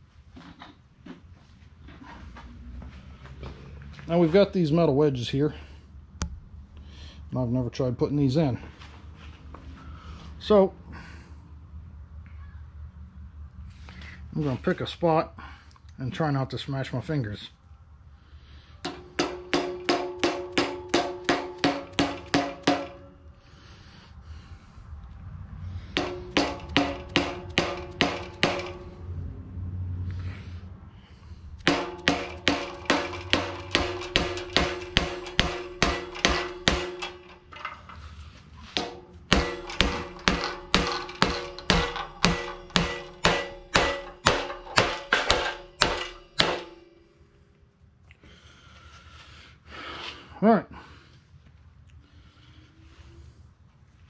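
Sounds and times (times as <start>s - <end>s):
mallet striking metal wedge: 18.9s - 23.2s, 26.0s - 28.9s, 31.6s - 37.6s, 38.8s - 47.0s.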